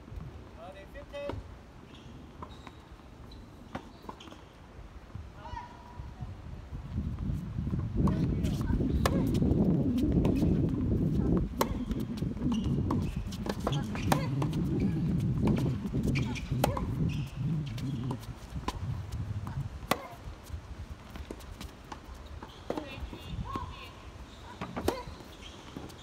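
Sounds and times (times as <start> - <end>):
tennis ball struck and bouncing: 8.0 - 9.4, 10.1 - 17.0, 17.7 - 20.2.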